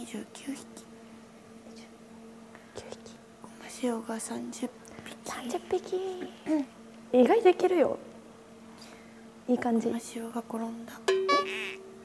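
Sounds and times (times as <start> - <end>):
woman whispering: 0.0 - 0.8, 2.7 - 6.4
steady low hum: 0.0 - 12.0.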